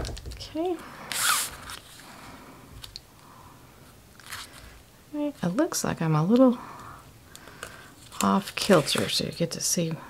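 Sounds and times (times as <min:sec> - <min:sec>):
cardstock rustling and sliding: 0:08.0 - 0:09.3.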